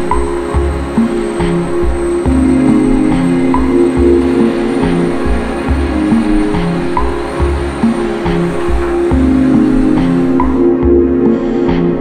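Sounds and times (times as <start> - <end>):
background music with sustained tones: 0.0 - 12.0.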